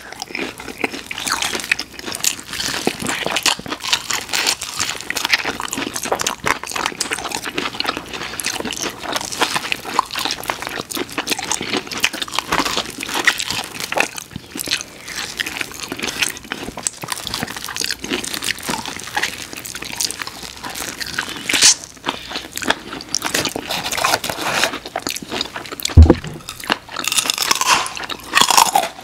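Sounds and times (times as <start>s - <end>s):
crunching and chewing: 0.0s - 29.0s.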